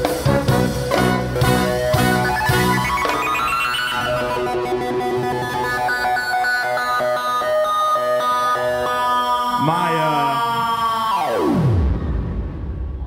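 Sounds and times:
electronic keyboard playing chords: 0.0 - 11.9.

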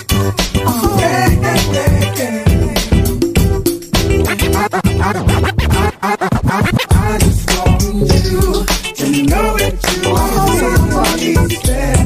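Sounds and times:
hip hop music: 0.0 - 12.0
turntable scratching: 0.0 - 12.0.

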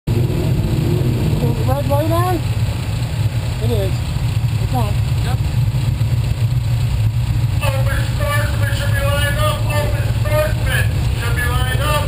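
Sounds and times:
race car engine idling: 0.1 - 12.0.

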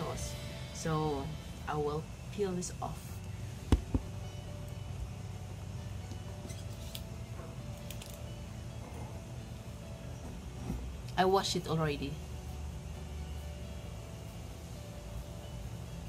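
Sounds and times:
steady low hum: 0.0 - 16.0.

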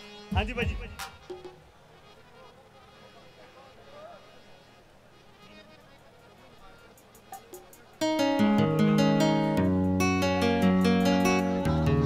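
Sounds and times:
faint distant voices: 0.0 - 9.6.

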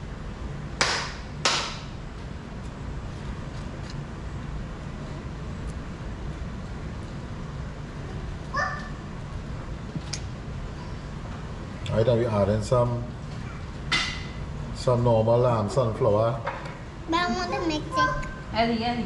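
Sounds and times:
low room hum: 0.0 - 19.0.

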